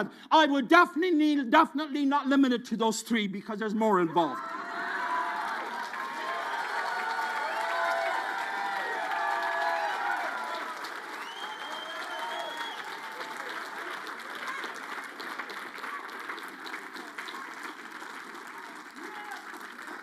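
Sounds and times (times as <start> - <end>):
congregation applauding: 4.2 - 20.0.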